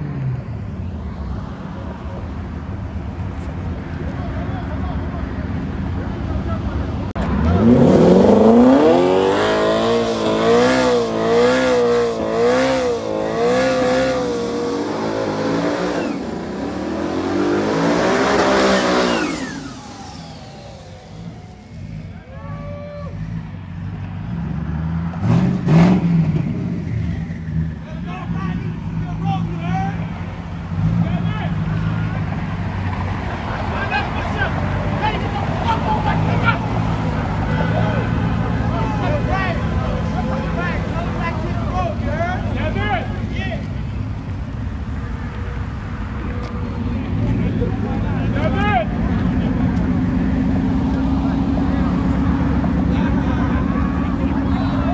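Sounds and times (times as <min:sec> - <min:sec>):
engines idling: 0:00.0 - 0:54.9
car engine revving: 0:07.2 - 0:22.3, 0:23.2 - 0:54.9.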